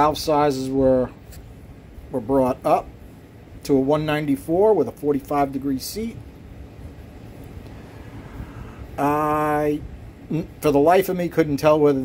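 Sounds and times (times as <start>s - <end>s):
low steady background rumble: 0.0s - 12.0s.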